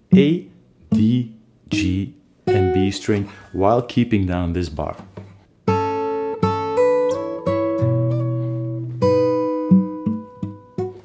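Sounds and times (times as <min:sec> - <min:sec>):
fingerpicked acoustic guitar: 0:00.0 - 0:04.0, 0:04.8 - 0:11.0.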